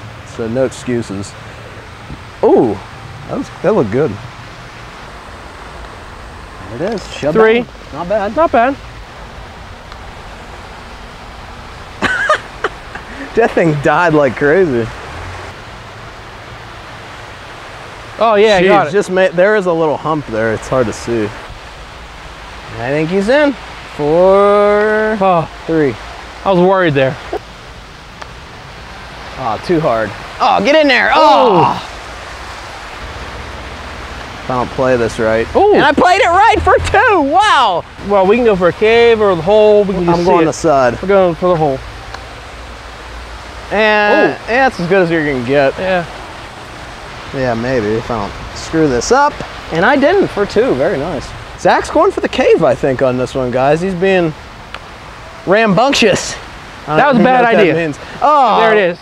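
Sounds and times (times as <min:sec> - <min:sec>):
outdoor background hiss: 0:00.0 - 0:59.0
person speaking: 0:06.6 - 0:08.8, 0:12.3 - 0:14.9, 0:18.2 - 0:21.3, 0:29.4 - 0:32.0, 0:34.5 - 0:41.6, 0:43.7 - 0:46.1, 0:55.5 - 0:59.0.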